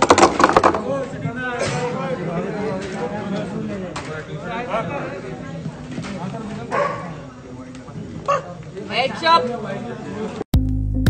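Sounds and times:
murmur of voices: 0.0 - 10.5
dog barking: 6.7 - 7.2, 8.3 - 8.6.

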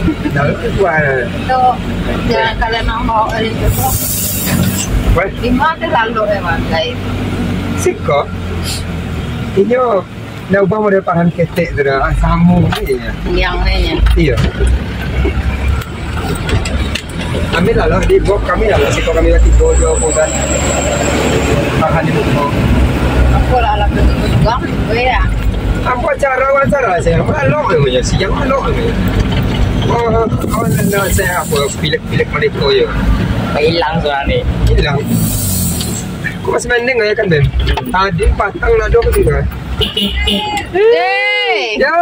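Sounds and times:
truck engine and cab rumble: 0.0 - 42.0
high hiss: 3.8 - 4.8, 35.0 - 36.1.

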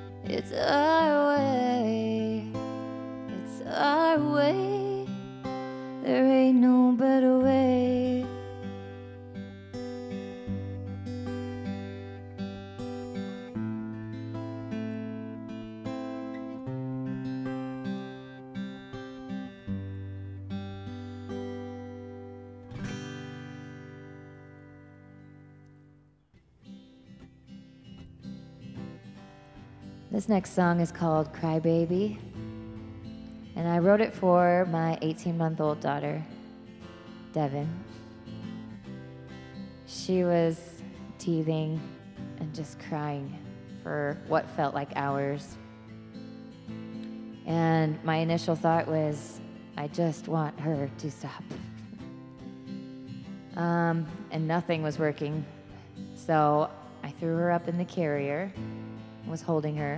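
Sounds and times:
acoustic guitar: 0.0 - 59.9
woman singing: 0.1 - 8.6, 33.5 - 36.3, 39.9 - 45.5, 47.5 - 51.8.

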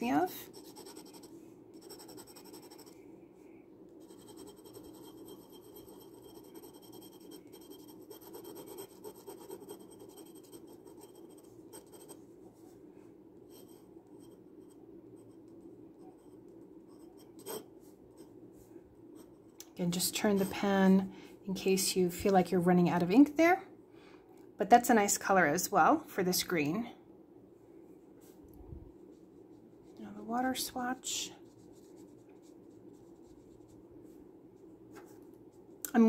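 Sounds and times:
glass pen scratching on paper: 0.5 - 3.0, 4.0 - 12.2, 16.1 - 17.7.

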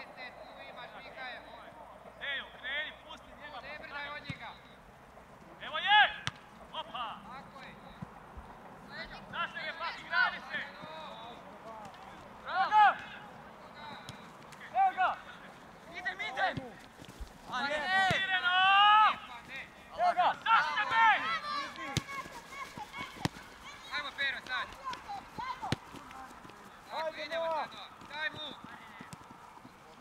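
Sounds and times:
football players shouting: 12.4 - 16.8, 17.5 - 29.3.

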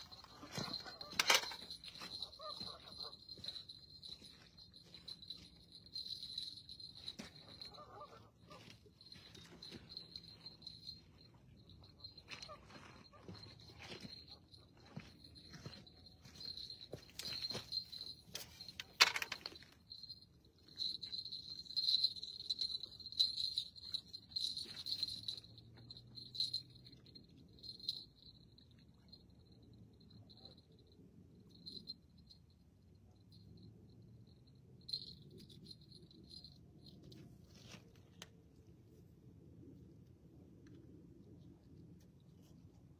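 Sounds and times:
crickets chirping: 0.0 - 7.8, 8.9 - 37.2.

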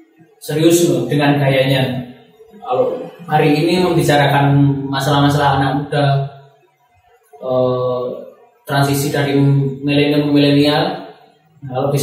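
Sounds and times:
man speaking: 0.4 - 6.3, 7.4 - 12.0.

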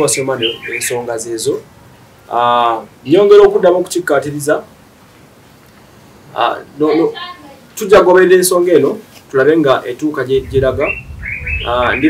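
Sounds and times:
bird whistling calls: 0.1 - 1.0, 10.4 - 12.0
person speaking: 6.4 - 10.9.

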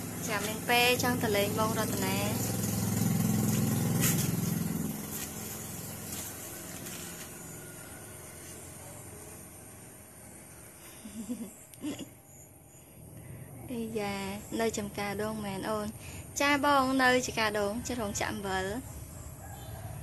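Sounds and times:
engine droning: 0.0 - 11.3.

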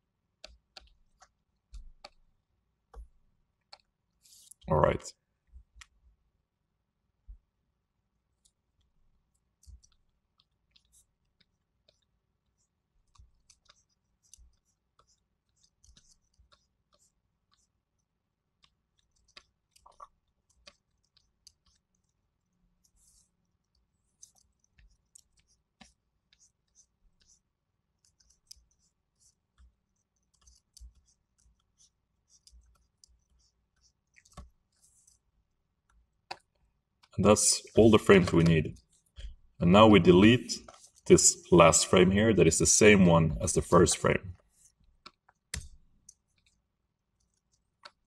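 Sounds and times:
computer mouse clicks: 0.4 - 2.2, 32.3 - 35.2, 45.0 - 46.6, 47.2 - 48.0.

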